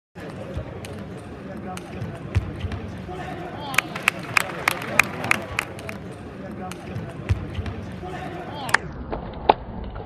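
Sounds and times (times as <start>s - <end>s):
crowd murmur: 0.2s - 8.9s.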